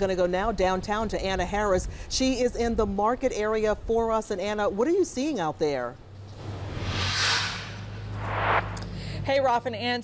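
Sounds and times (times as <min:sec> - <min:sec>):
steady low hum: 0:06.0 - 0:09.4
whoosh sound effects: 0:06.2 - 0:09.0.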